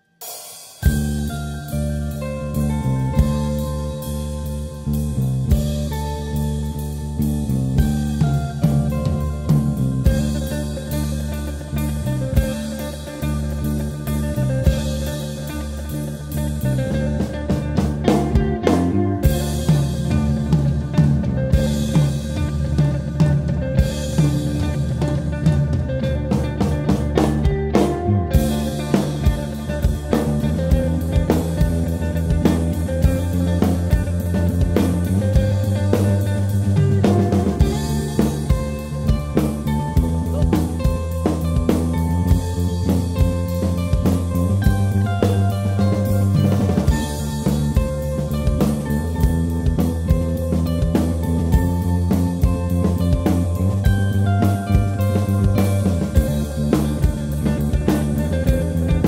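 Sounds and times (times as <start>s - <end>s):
drum kit played with sticks: 0.0s - 59.0s
electric bass guitar: 0.8s - 59.0s.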